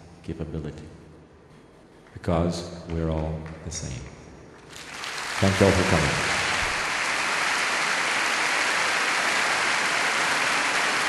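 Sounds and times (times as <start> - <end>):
large audience applauding: 4.7 - 11.0.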